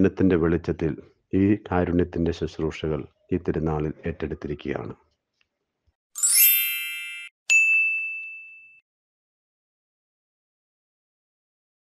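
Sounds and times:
high ding: 0:06.2 - 0:08.8
shimmering synthetic chime: 0:06.2 - 0:08.8.

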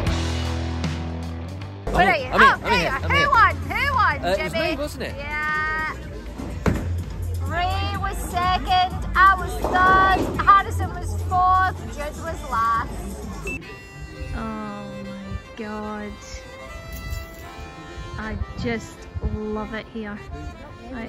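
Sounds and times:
music with sustained notes: 0:07.1 - 0:21.0.

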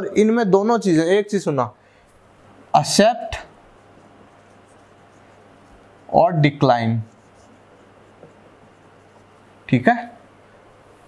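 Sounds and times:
marker scratching on whiteboard: 0:03.3 - 0:09.6.

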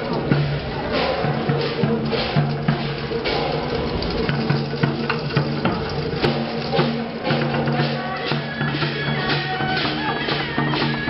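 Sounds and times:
drums and percussion in steady rhythm: 0:00.0 - 0:11.0.

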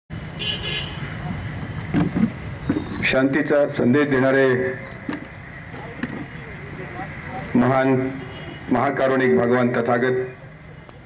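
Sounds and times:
traffic-like rumble: 0:00.1 - 0:11.0.

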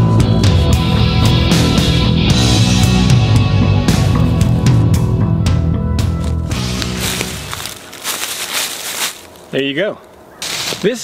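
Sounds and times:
footsteps crunching dry leaves: 0:04.1 - 0:04.8, 0:06.1 - 0:11.0.

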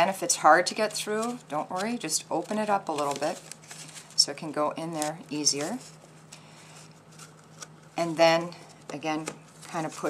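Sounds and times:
low steady hum: 0:00.0 - 0:10.0
soft paper rustling: 0:00.7 - 0:10.0.

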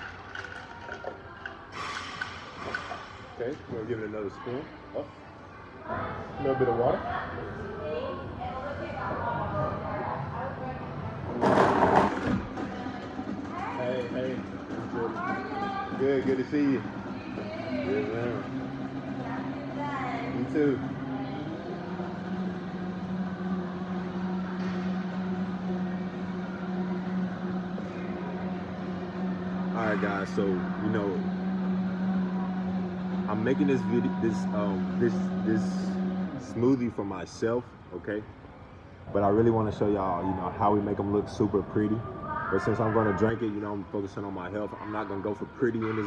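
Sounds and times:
blender pulsing: 0:11.3 - 0:13.2, 0:13.8 - 0:37.1.

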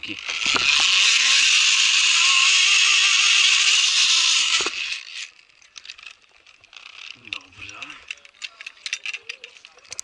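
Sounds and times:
carabiners clicking and rattling: 0:00.0 - 0:10.0.

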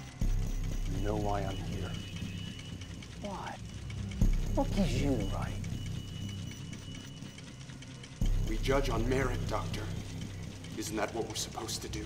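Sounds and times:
balls ticking through machine: 0:00.0 - 0:12.0
low steady hum: 0:00.0 - 0:12.0.

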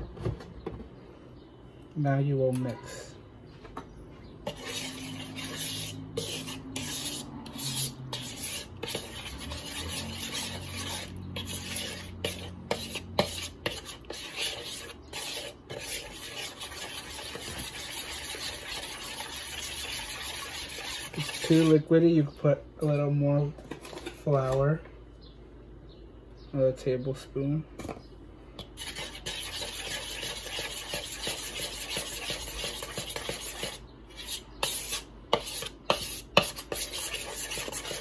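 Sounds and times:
metal spoon scraping plastic bowl: 0:04.4 - 0:21.9, 0:23.6 - 0:24.7, 0:28.6 - 0:38.0.

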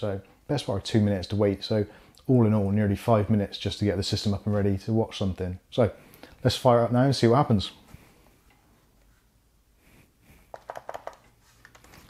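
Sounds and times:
plastic keyboard key clicks: 0:10.6 - 0:11.9.

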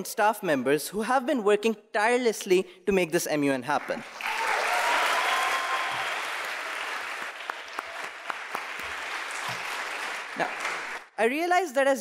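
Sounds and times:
audience applauding: 0:03.8 - 0:11.2.

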